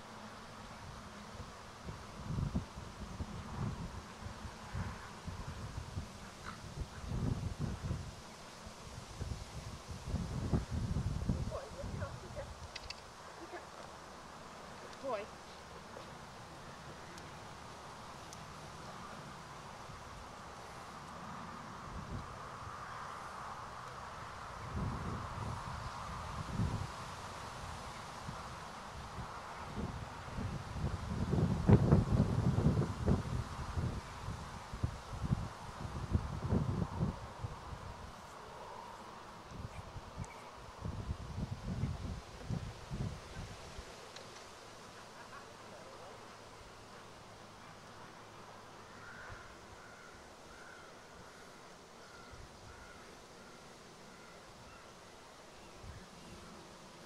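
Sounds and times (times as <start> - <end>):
wind gusting on microphone: 0.7 - 15.4, 24.0 - 44.0.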